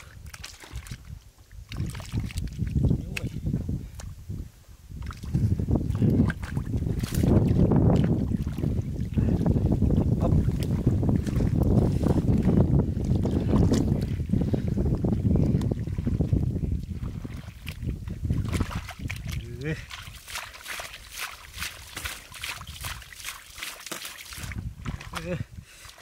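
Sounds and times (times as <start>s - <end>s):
hands sloshing in muddy water: 0.0s - 4.2s, 5.0s - 26.0s
splashes and squelches: 0.0s - 4.2s, 4.9s - 26.0s.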